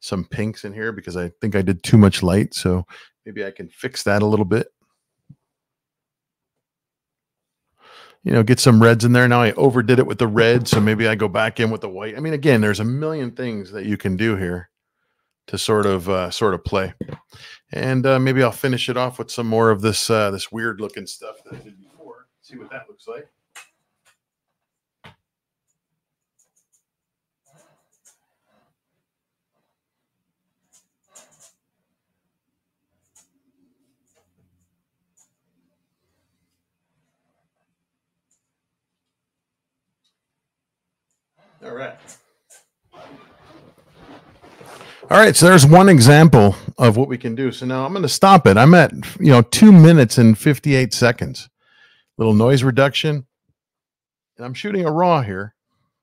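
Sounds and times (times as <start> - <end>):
faint breath intake: 2.8 - 3.2, 7.8 - 8.2, 17.3 - 17.7
faint rustling: 41.3 - 45.1.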